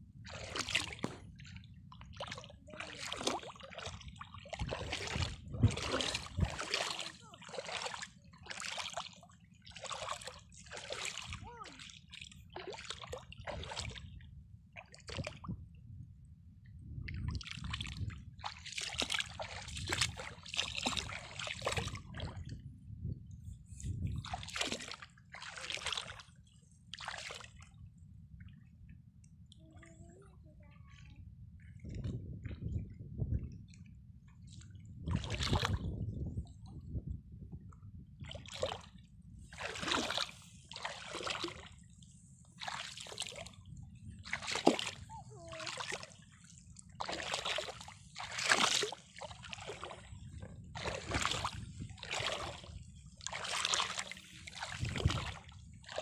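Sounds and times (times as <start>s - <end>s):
footsteps splashing through water: 0.3s - 1.4s, 2.1s - 14.0s, 17.3s - 22.5s, 24.2s - 26.3s, 27.0s - 27.6s, 35.0s - 36.0s, 38.2s - 38.9s, 39.5s - 41.8s, 42.6s - 43.6s, 44.2s - 56.0s.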